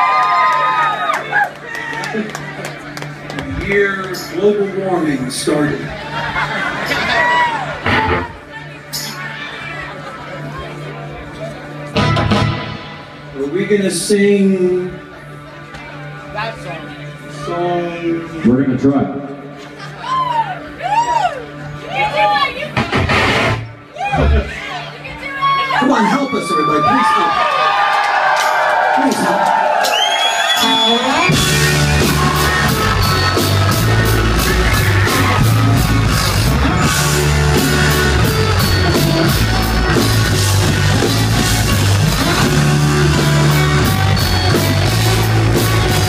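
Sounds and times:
live rock band playing loud: 6.4 - 9.6, 11.8 - 13.5, 22.6 - 24.6, 29.1 - 46.0.

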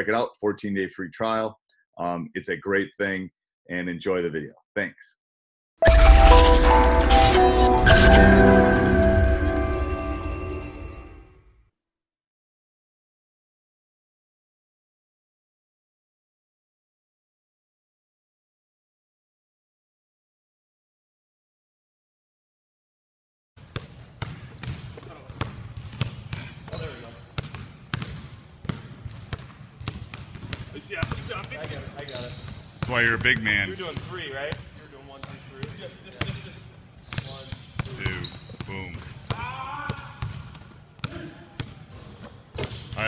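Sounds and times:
basketballs bouncing on hardwood floor: 23.6 - 36.4, 37.0 - 41.8, 42.5 - 43.0.

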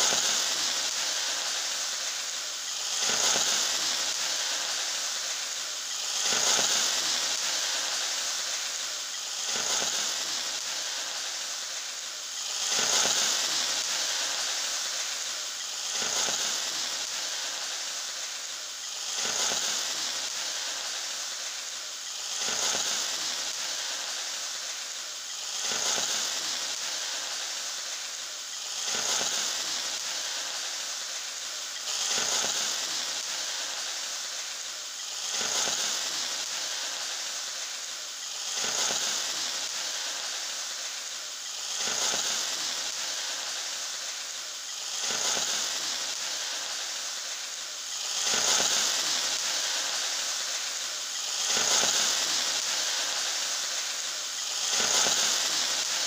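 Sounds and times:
onions sizzling in oil: 0.0 - 56.0.

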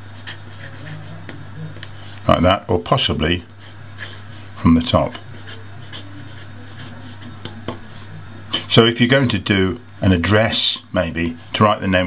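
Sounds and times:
fountain pen scratching on paper: 0.1 - 1.4, 3.6 - 4.3, 5.0 - 8.1.

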